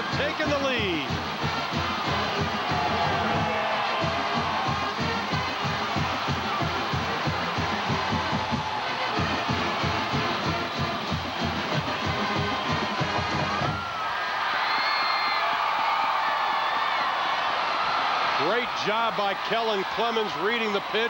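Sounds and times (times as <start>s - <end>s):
steady drumbeat: 0.0s - 13.9s
crowd cheering: 0.0s - 21.0s
stadium band music: 0.0s - 21.0s.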